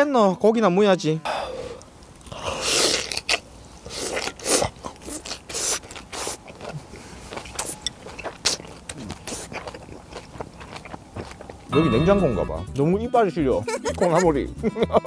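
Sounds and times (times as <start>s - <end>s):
crunchy chewing: 1.8s - 11.7s
lip smacks: 1.8s - 11.7s
man slurping mouthful: 2.3s - 9.6s.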